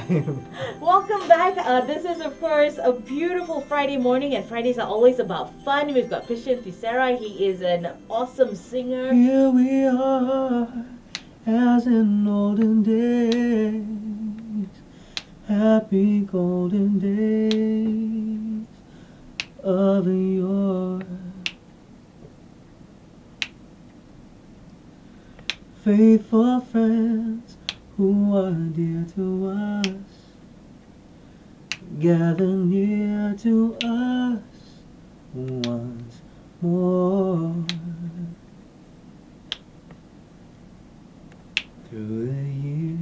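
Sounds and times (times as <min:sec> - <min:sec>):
faint room hiss: 0:00.0 - 0:43.0
finger snaps: 0:11.1 - 0:11.3, 0:12.6 - 0:13.5, 0:14.3 - 0:15.4, 0:17.4 - 0:18.0, 0:19.4 - 0:19.6, 0:21.0 - 0:21.7, 0:23.4 - 0:23.6, 0:25.4 - 0:25.7, 0:27.5 - 0:27.8, 0:29.8 - 0:30.1, 0:31.7 - 0:32.5, 0:33.7 - 0:34.1, 0:35.4 - 0:36.1, 0:37.6 - 0:37.9, 0:39.5 - 0:40.0, 0:41.3 - 0:41.8.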